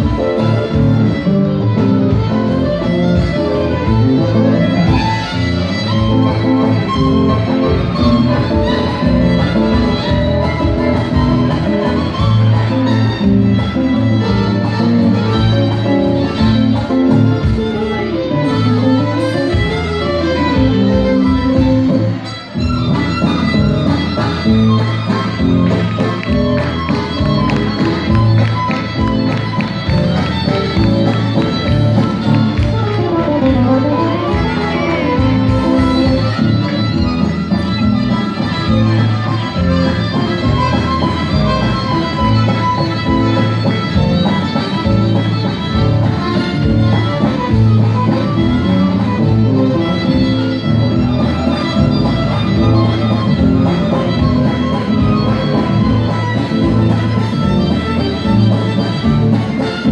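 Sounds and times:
accordion: 0.0s - 59.9s
acoustic guitar: 0.0s - 59.9s
drum kit: 0.0s - 59.9s
fiddle: 0.0s - 59.9s.

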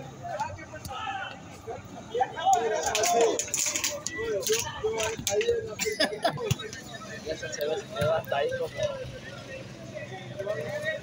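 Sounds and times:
men calling out and talking: 0.0s - 11.0s.

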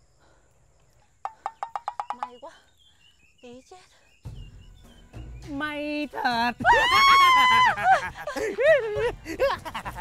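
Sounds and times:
rapid chirping call: 1.2s - 5.4s.

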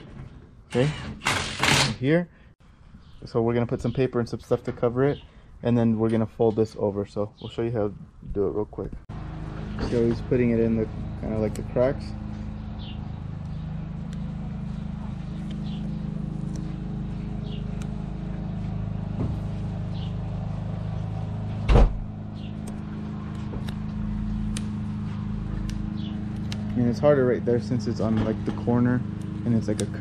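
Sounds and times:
engine idling hum: 8.8s - 30.0s.

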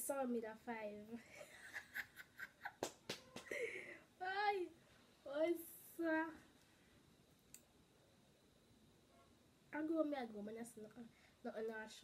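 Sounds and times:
faint click: 7.3s - 7.7s.

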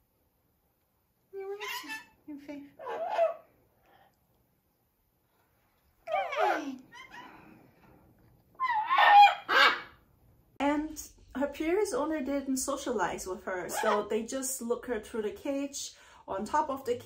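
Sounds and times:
parrot calling: 1.4s - 3.6s, 6.1s - 7.5s, 8.6s - 10.1s, 13.7s - 14.1s.

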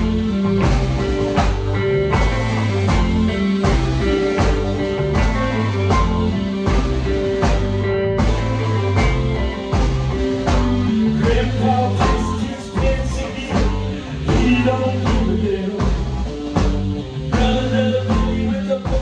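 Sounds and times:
drum hits: 0.0s - 18.3s
rock band playing: 0.0s - 19.0s.

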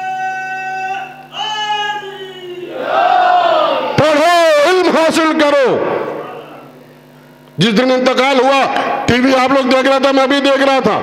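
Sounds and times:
amplified man's voice with sung notes: 0.0s - 2.8s.

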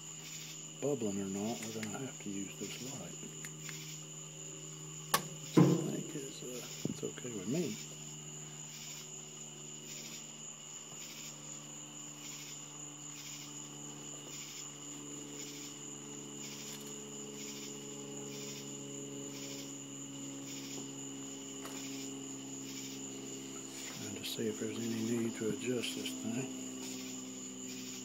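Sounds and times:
crickets trilling: 0.0s - 28.0s
faint low hum: 0.0s - 28.0s
pulsing cricket chirp: 0.0s - 28.0s.

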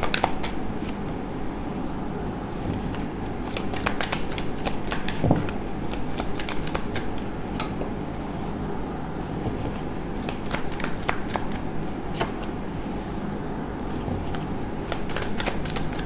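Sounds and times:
cards shuffling and snapping: 2.9s - 7.8s, 14.3s - 16.0s.

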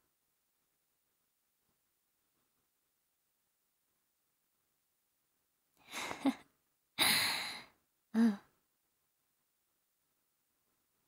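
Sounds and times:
woman breathing and sighing: 5.8s - 6.4s, 7.0s - 8.5s.

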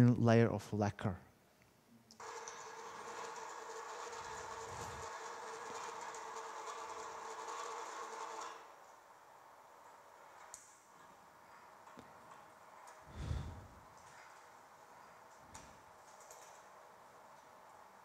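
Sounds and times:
winding machine humming: 2.2s - 10.4s.

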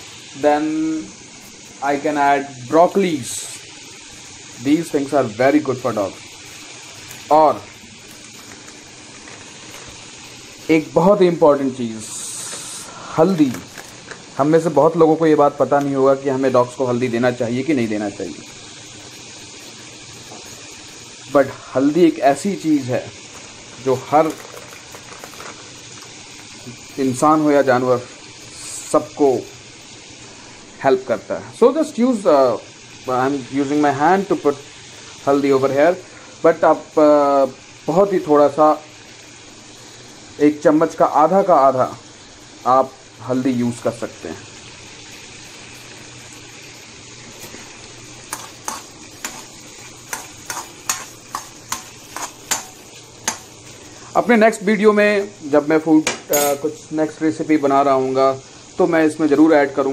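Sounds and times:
food sizzling in a pan: 0.0s - 59.9s
metal spoon scraping a wok: 48.3s - 53.5s.

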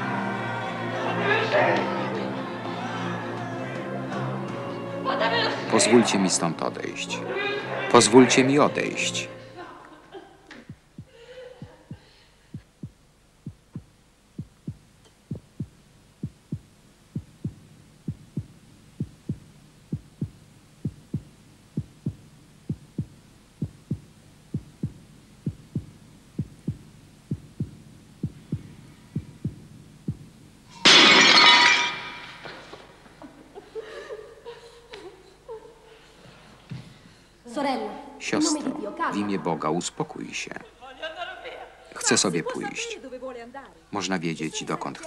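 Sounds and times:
low thudding beat: 10.6s - 30.7s
clay jar smashing on stone: 30.8s - 32.4s.

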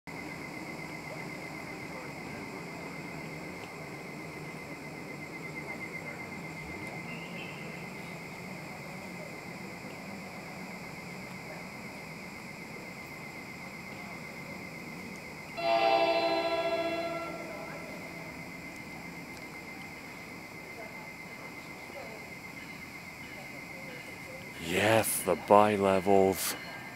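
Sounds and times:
train horn blast: 15.6s - 18.8s
steady high-pitched buzz: 15.6s - 19.4s.

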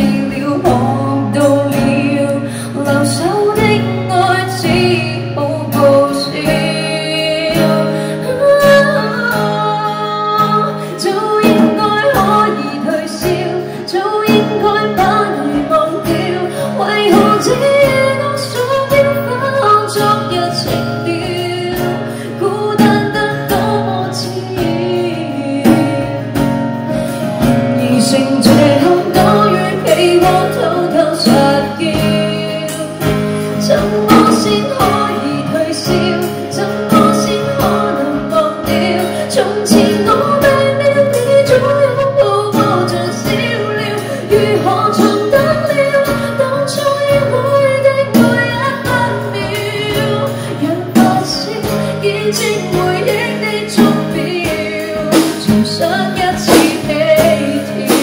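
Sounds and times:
acoustic guitar strumming: 0.0s - 58.0s
woman singing: 0.0s - 58.0s
drum kit beat: 48.0s - 58.0s.

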